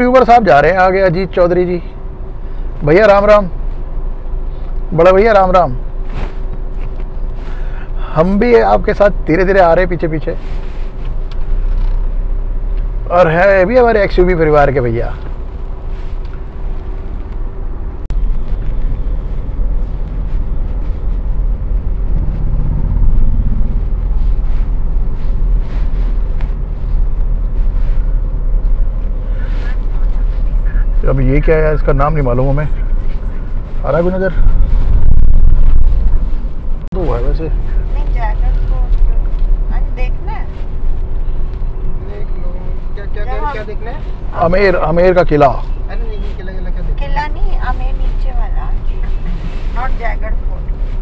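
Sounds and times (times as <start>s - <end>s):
engine and road rumble inside car: 0.0s - 51.0s
loud low rumble: 17.6s - 40.0s
low hum rising in pitch: 18.1s - 28.5s
talking voices: 29.2s - 32.0s.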